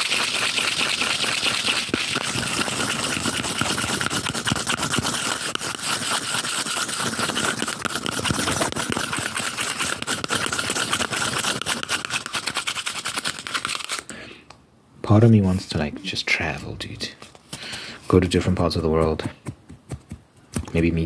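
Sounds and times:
scratching on cardboard tube: 0.0 - 14.0, 18.1 - 20.8.

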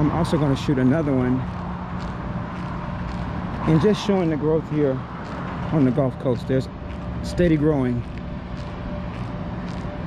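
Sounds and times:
outdoor hum: 0.0 - 10.0
road traffic rumble: 0.0 - 10.0.

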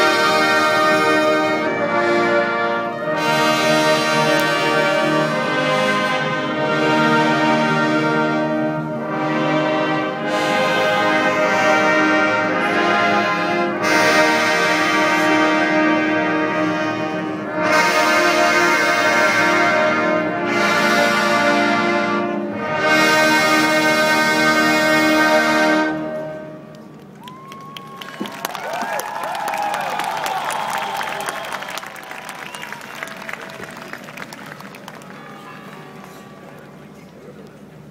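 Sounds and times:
military brass band playing: 0.0 - 26.8
audience applause and cheering: 26.8 - 36.9.

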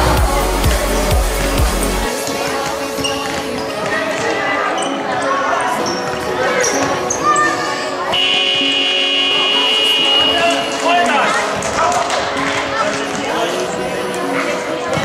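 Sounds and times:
referee's whistle blast: 8.2 - 10.8.

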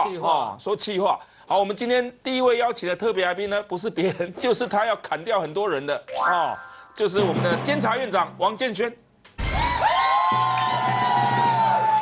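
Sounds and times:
studio audience cheering: 9.4 - 12.0.

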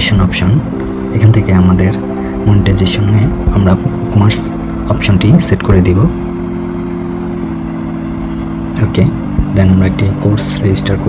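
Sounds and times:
low hum of held tones: 0.0 - 11.0.

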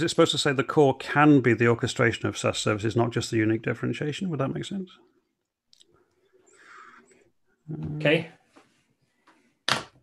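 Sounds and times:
man speaking: 0.0 - 5.1.

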